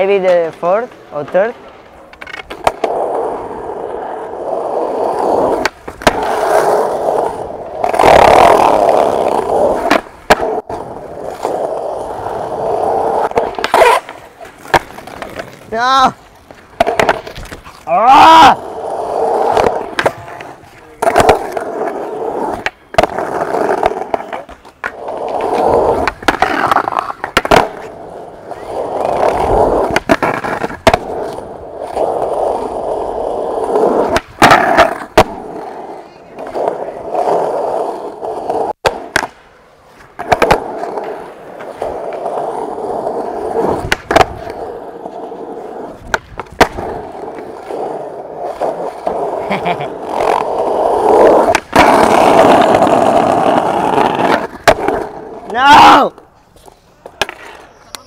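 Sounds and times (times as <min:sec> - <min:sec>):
skateboard clacks: 0:00.0 - 0:58.0
skateboard wheels rolling on concrete: 0:00.0 - 0:58.0.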